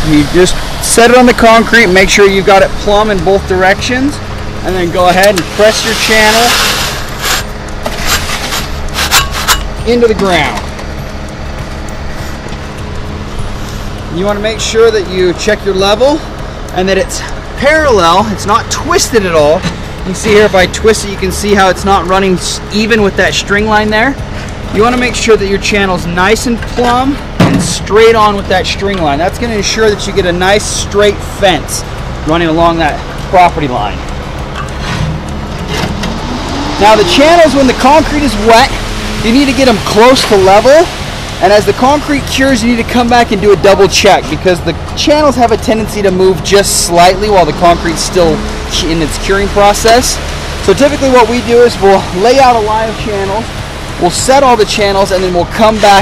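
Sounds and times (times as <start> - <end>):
low rumble: 0.0 - 55.7
low mechanical hum: 0.0 - 56.0
metal scraping in wet concrete: 5.0 - 10.6.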